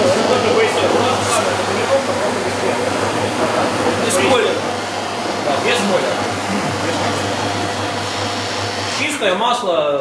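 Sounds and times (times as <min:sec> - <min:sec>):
floor machine whirring: 0:00.0 - 0:10.0.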